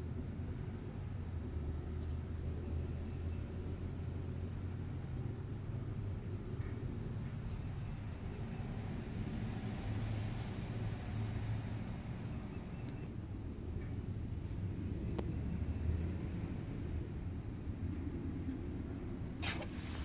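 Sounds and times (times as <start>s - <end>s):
low rumble of road traffic: 0.0s - 20.0s.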